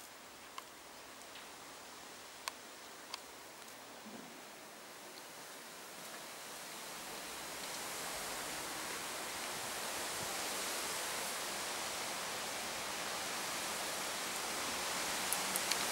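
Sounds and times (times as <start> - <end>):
rushing hiss of outdoor noise: 0.0 - 15.9.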